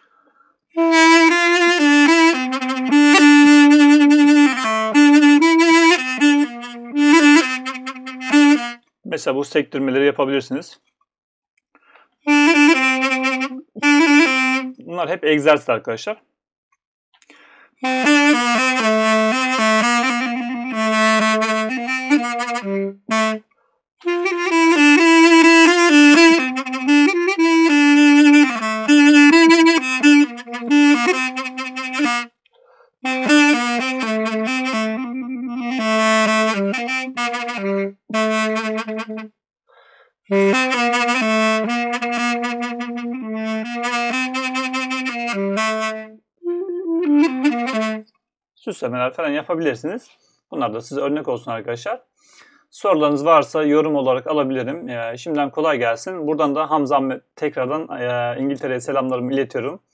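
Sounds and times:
double-reed wind instrument melody: 0:00.8 - 0:08.8, 0:12.2 - 0:14.9, 0:17.8 - 0:32.4, 0:33.0 - 0:39.4, 0:40.3 - 0:48.1.

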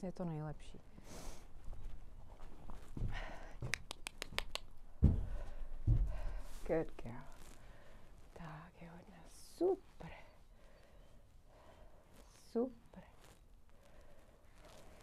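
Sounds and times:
hooves thudding on a ramp: 0:05.0 - 0:06.6.

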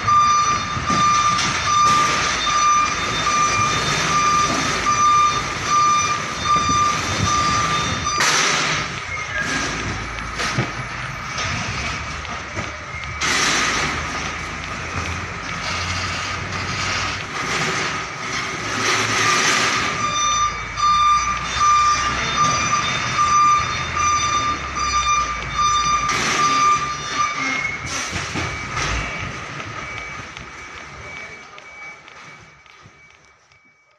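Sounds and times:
diesel truck engine running: 0:00.0 - 0:33.1
high alarm beep: 0:00.0 - 0:33.9.

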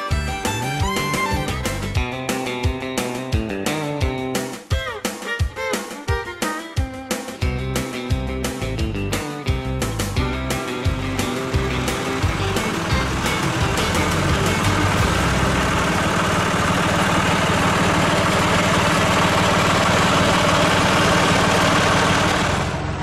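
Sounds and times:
tractor engine running: 0:00.0 - 0:04.4, 0:08.5 - 0:23.0
guitar music: 0:00.0 - 0:21.6.

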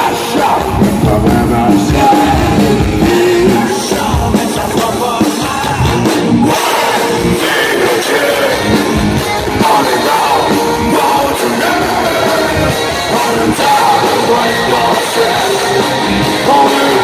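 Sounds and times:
live rock band playing: 0:00.0 - 0:17.0
male singer singing: 0:00.0 - 0:17.0.

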